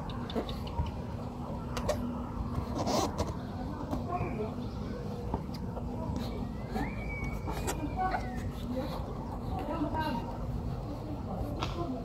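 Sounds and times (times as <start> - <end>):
hand rubbing tape on metal: 2.6 - 3.4.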